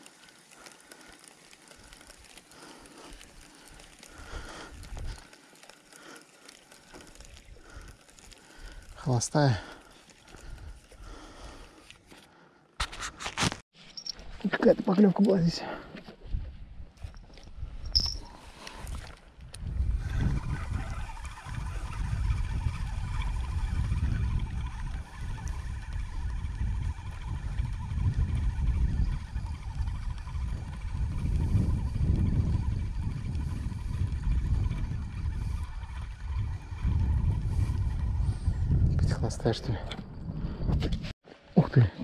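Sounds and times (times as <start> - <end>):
wind buffeting microphone: 16.2 - 41.1.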